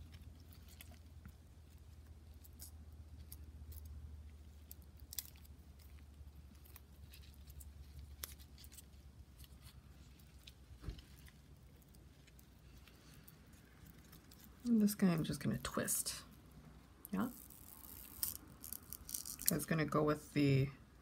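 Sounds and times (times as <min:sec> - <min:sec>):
soft thump: 0:10.8 - 0:11.1.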